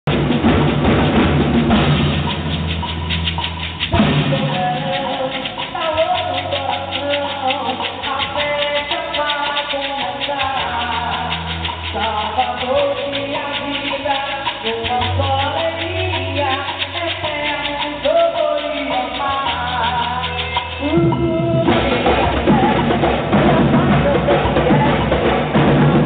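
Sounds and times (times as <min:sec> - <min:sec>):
percussion group drumming: 0:00.0 - 0:26.0
sharp drum hit: 0:00.1 - 0:05.0
person singing: 0:03.9 - 0:25.6.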